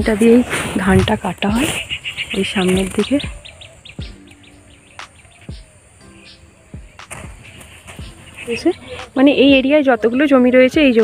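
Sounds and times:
person's voice: 0.0s - 1.7s, 8.5s - 11.0s
rapid high chirps: 0.0s - 11.0s.

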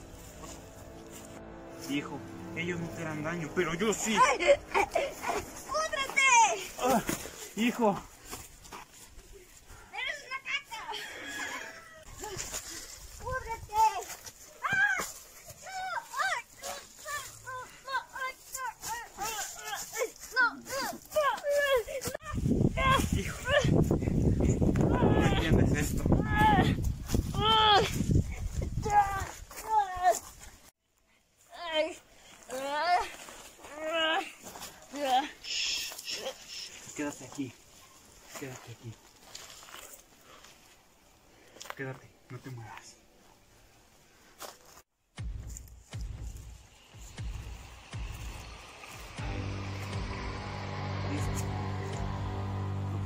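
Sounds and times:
child crying out: 14.6s - 15.1s, 27.3s - 28.0s
young person wailing: 27.3s - 28.0s
low rumbling noise: 45.2s - 53.0s.

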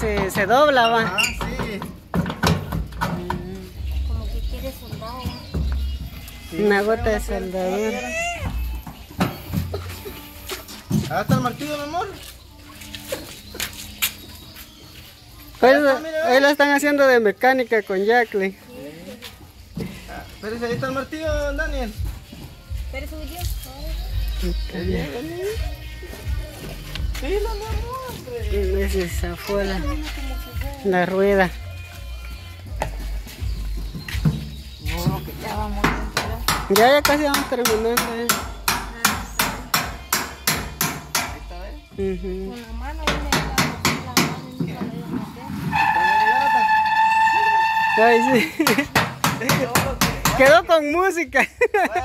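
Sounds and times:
background music: 0.0s - 52.0s.

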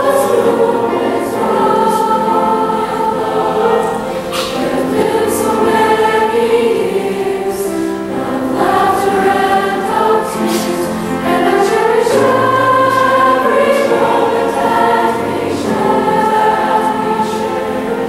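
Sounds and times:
choir singing in harmony: 0.0s - 18.0s.

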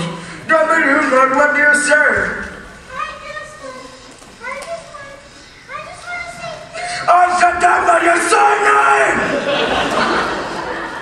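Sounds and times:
children speaking: 2.7s - 11.0s.

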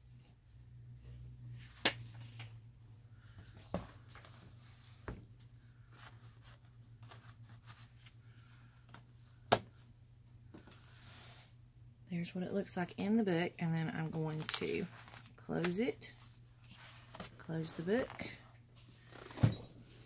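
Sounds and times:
low steady hum: 0.0s - 20.0s
paper and fabric rustling: 14.1s - 20.0s.

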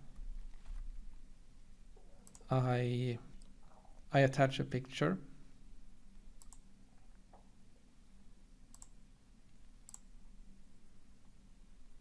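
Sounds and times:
low steady hum: 0.0s - 12.0s
computer mouse clicks: 2.2s - 2.5s, 6.4s - 6.7s, 8.7s - 9.0s, 9.8s - 10.1s.

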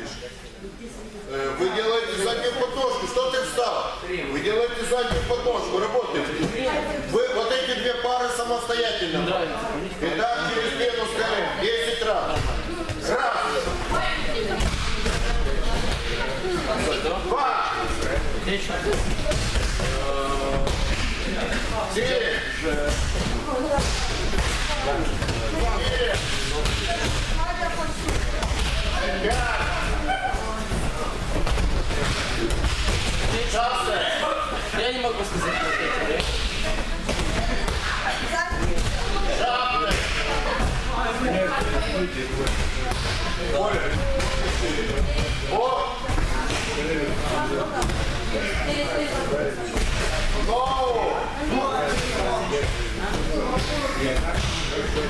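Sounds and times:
many people talking in a hall: 0.0s - 55.0s
children's voices hubbub: 23.3s - 55.0s.

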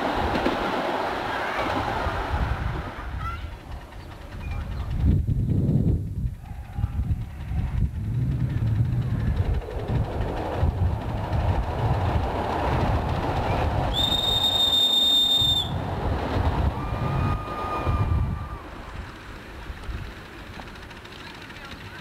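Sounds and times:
miniature train rumbling on rails: 0.0s - 5.6s, 6.2s - 22.0s
high locomotive whistle: 13.9s - 15.8s
low whistle note: 13.9s - 15.8s.

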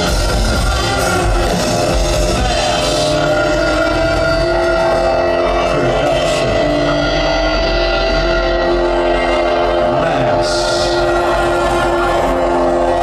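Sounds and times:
keyboard sustained notes: 0.0s - 13.0s
rock band playing drone: 0.0s - 13.0s.

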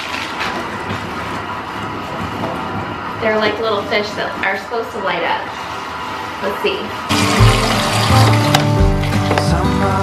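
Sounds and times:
water pouring into bathtub: 7.1s - 9.5s.

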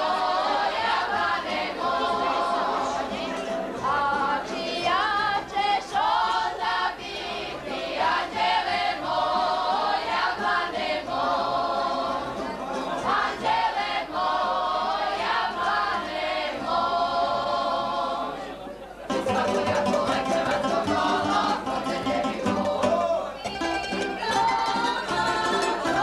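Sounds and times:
women singing folk song: 0.0s - 26.0s.

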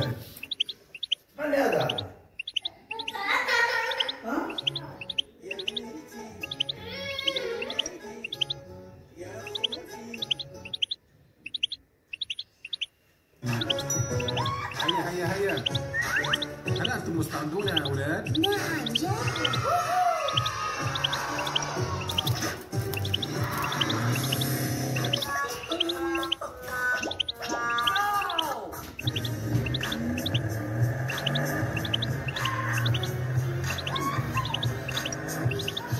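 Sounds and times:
goldfinch chirping: 0.0s - 8.8s, 9.4s - 35.9s
music playing: 3.9s - 11.0s, 13.4s - 35.9s.

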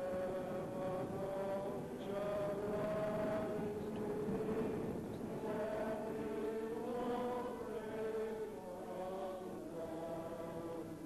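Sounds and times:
steady background hiss: 0.0s - 11.0s
voices singing a slow hymn: 0.0s - 11.0s.

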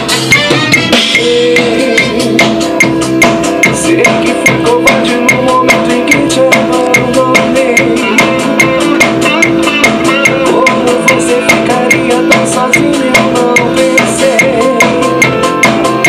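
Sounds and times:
band music: 0.0s - 16.0s
drum kit beat: 0.0s - 16.0s.

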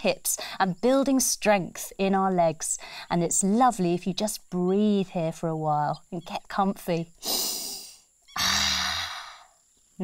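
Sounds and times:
woman sighing: 7.2s - 9.5s.

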